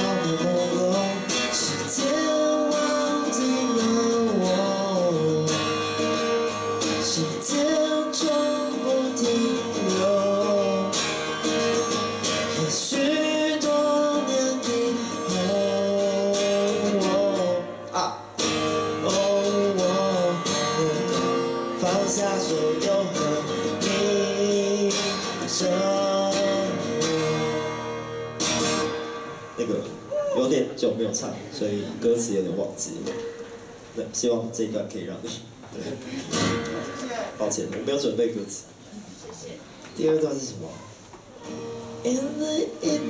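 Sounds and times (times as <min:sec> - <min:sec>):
man singing: 0:00.0 - 0:18.0, 0:18.7 - 0:28.1, 0:41.8 - 0:43.0
strummed acoustic guitar: 0:00.0 - 0:38.6, 0:40.6 - 0:43.0.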